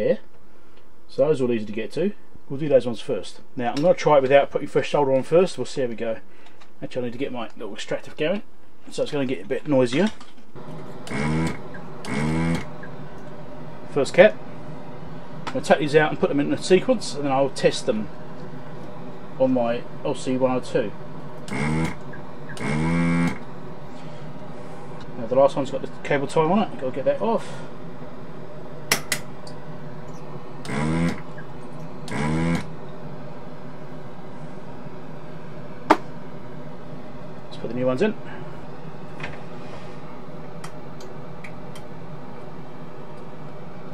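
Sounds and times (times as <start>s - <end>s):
fume extractor fan running: 0.0s - 43.9s.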